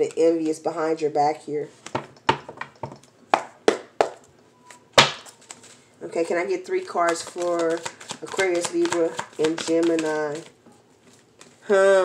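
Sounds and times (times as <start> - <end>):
cards tapping on a table: 7.0 - 10.5.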